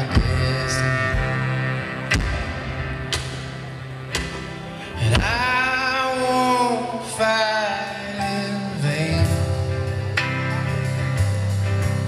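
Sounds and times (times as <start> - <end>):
drum beats: 0.0 - 5.9
acoustic guitars: 0.0 - 12.0.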